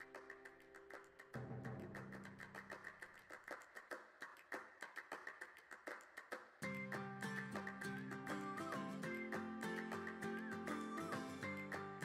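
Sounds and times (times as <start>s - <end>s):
ticking percussion in music: 6.6s - 12.0s.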